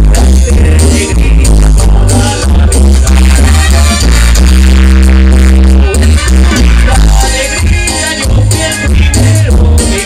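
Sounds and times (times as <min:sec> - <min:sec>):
live band with heavy bass: 0:00.0 - 0:10.0.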